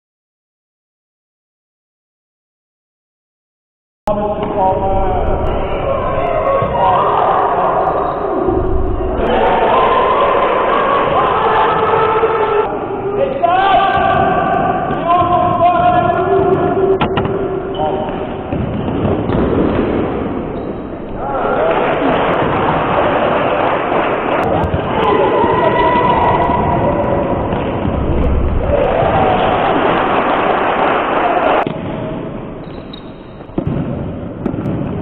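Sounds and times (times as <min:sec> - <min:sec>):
voices shouting and calling: 0:05.4 - 0:18.0.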